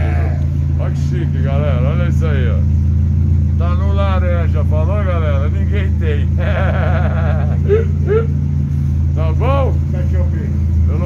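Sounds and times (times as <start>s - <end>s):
buggy engine idling: 0.0s - 11.0s
voices: 0.0s - 11.0s.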